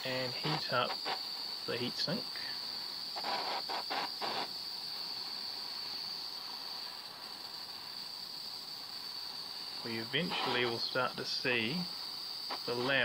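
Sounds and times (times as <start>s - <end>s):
blowtorch flame hissing: 0.0s - 13.0s.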